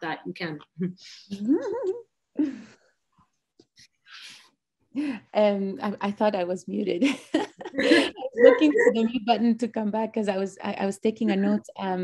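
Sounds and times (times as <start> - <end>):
woman laughing softly: 7.4 - 9.1.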